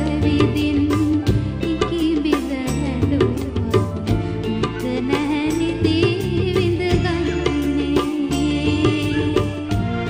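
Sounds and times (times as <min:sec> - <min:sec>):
bass line: 0:00.0 - 0:10.0
live band: 0:00.0 - 0:10.0
tabla strikes: 0:00.0 - 0:10.0
woman singing: 0:00.0 - 0:10.0.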